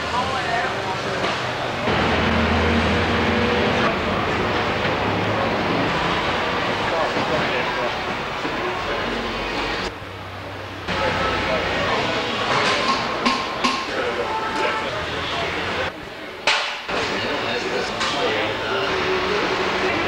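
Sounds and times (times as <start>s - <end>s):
indistinct chatter: 0.0s - 20.0s.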